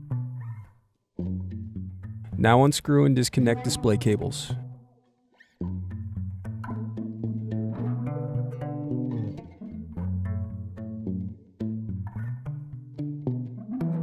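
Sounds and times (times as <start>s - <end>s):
background instrumental music: 0.0s - 14.0s.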